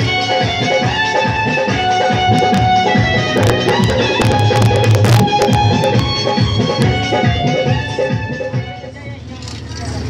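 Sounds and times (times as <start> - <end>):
electronic keyboard and hand drum: 0.0 - 9.0
crowd noise and voices: 0.0 - 10.0.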